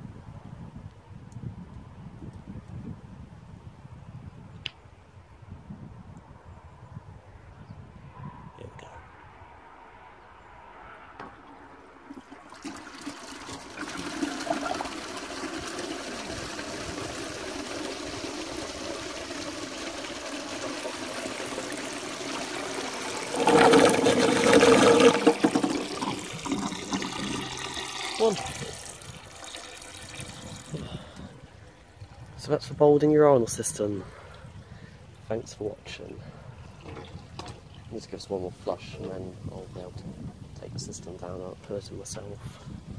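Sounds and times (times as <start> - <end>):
urinal cistern flushing: 11.4 - 34.5, 36.6 - 38.2
water rushing: 12.0 - 34.0.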